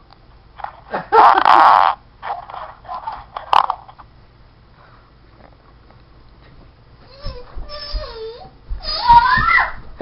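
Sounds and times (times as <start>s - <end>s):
man laughing: 0.9s - 1.7s.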